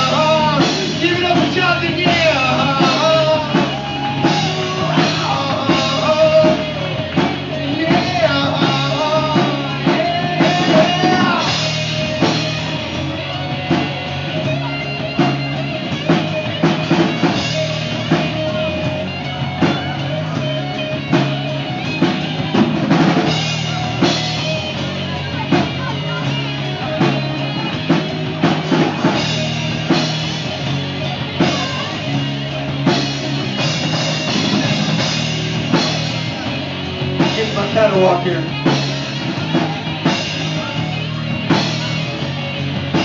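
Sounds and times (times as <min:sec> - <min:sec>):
bass guitar: 0:00.0 - 0:43.0
distorted electric guitars: 0:00.0 - 0:43.0
drum kit: 0:00.0 - 0:43.0.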